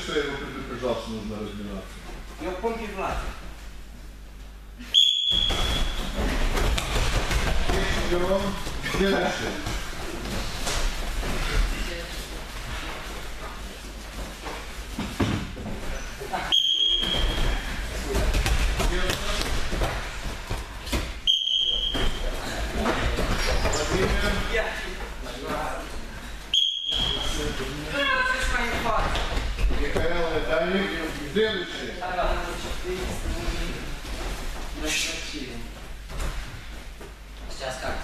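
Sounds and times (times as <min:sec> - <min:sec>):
short high signal tones: 0:04.9 - 0:06.0, 0:16.5 - 0:17.3, 0:21.3 - 0:22.1, 0:26.6 - 0:27.2
thuds of barefoot running on mats: 0:05.3 - 0:16.0, 0:17.0 - 0:24.8, 0:28.2 - 0:30.6.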